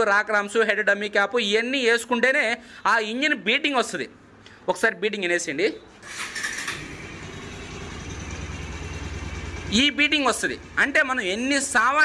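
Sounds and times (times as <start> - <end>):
electric starter cranking: 6.0 - 9.7
motorcycle engine idling: 6.6 - 11.9.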